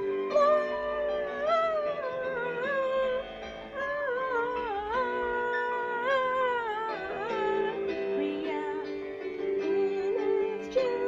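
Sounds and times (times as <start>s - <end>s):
woman singing long notes: 0.0s - 11.0s.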